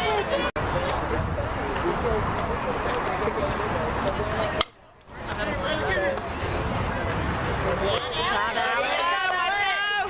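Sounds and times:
spectators chattering: 0.0s - 10.0s
bat striking ball: 4.6s - 4.8s.

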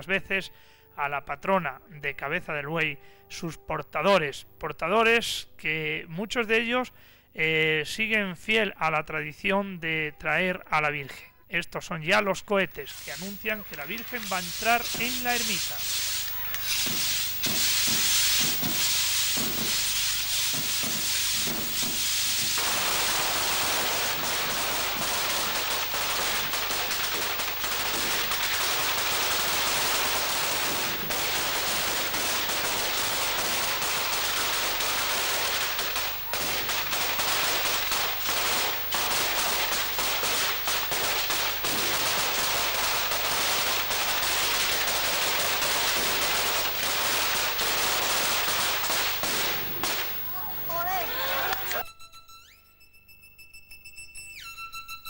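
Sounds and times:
firecrackers and rockets banging: 12.8s - 51.8s.

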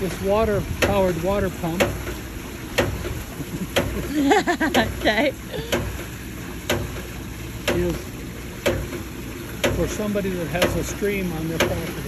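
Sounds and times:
water pump valve clacking: 0.0s - 12.0s.

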